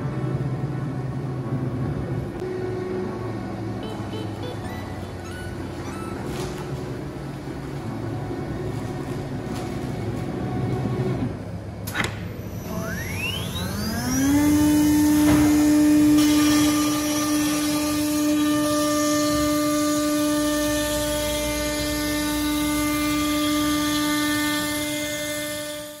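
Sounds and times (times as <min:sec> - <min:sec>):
router spindle whine: 0:12.4 - 0:26.0.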